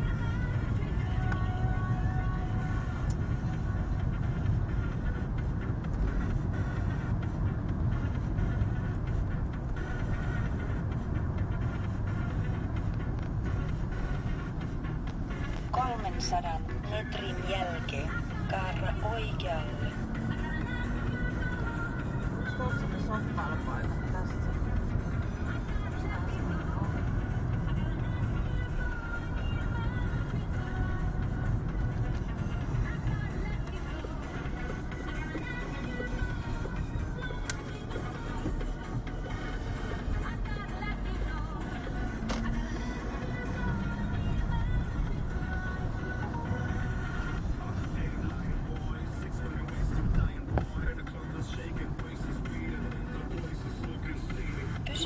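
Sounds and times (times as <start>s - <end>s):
engine and road rumble: 0.0s - 55.0s
music from car radio: 0.0s - 55.0s.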